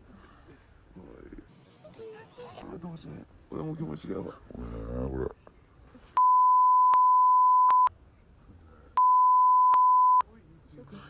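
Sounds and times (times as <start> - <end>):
censor bleeps: 6.2 - 7.9, 9.0 - 10.2.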